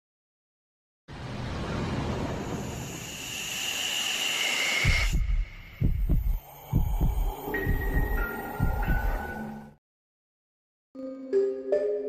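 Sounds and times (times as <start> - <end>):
hissing whoosh with high whine: 1.4 - 9.2
deep heartbeat thumps: 4.8 - 9.4.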